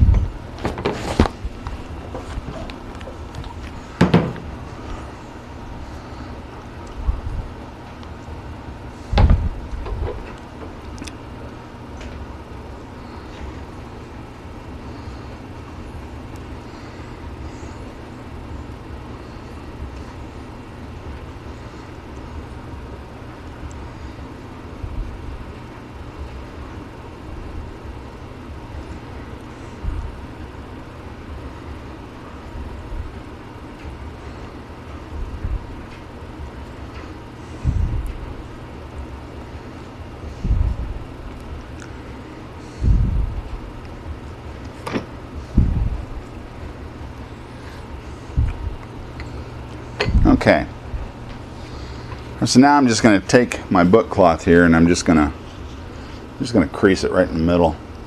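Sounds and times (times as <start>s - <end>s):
low background hum: 0.0s - 58.0s
dull low knocks: 9.2s - 10.1s.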